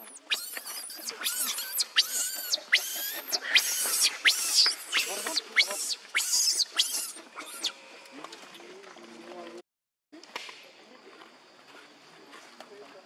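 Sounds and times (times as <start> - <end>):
infant monkey screaming: 0.0 - 7.8.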